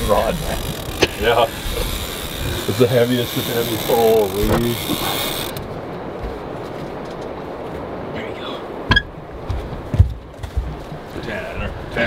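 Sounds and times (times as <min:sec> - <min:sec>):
fishing reel clicking: 0:00.5 - 0:05.6.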